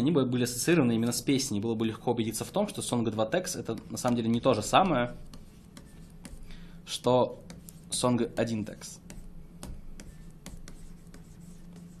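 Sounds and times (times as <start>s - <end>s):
steady low hum: 0.0s - 12.0s
stylus scratching on tablet: 2.4s - 6.5s, 7.3s - 12.0s.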